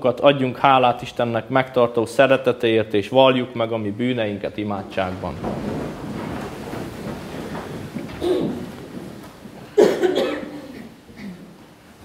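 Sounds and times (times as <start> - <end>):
person coughing: 8.2 - 8.6, 9.8 - 11.5.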